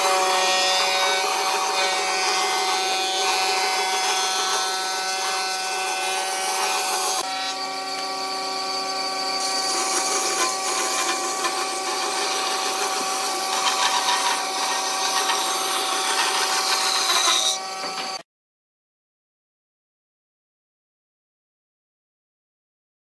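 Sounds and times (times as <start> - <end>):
band saw cutting wood: 0.0 - 18.2.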